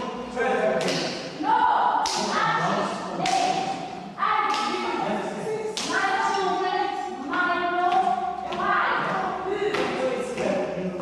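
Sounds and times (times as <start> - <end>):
group of voices singing: 0.0 - 11.0.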